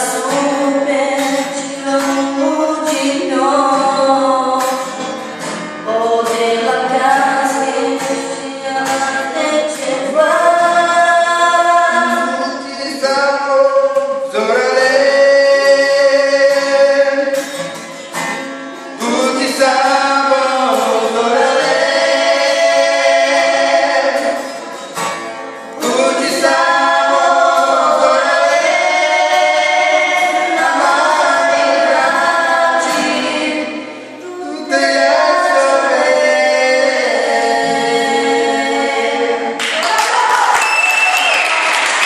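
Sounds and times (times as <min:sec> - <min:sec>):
man and woman singing duet: 0:00.0 - 0:17.6, 0:18.9 - 0:24.7, 0:25.7 - 0:40.0
acoustic guitar: 0:00.0 - 0:42.0.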